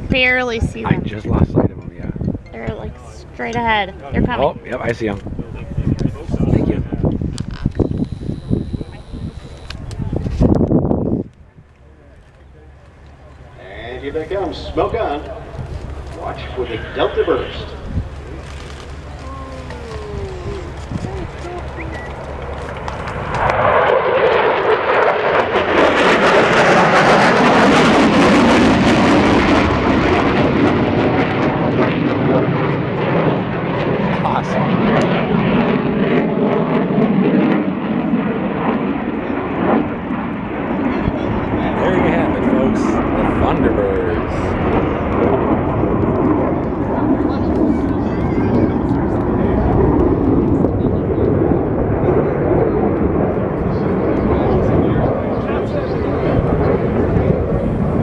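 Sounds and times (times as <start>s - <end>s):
jet engine roar overhead: 0.0s - 58.0s
crowd voices: 11.4s - 24.1s, 38.1s - 58.0s.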